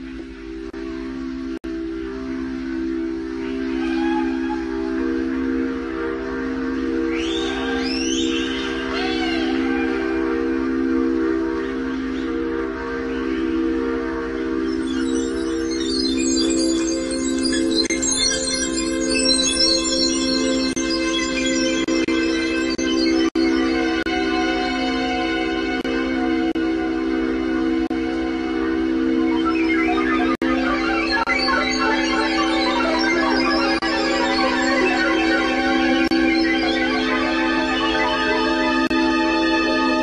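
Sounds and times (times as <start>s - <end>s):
sustained synthesizer chord: 0.0s - 40.0s
short high-pitched synth notes: 29.1s - 40.0s.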